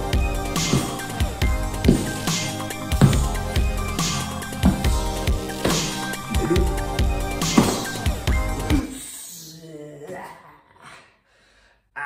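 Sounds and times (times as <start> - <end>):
gasping breaths: 10.6 - 11.9.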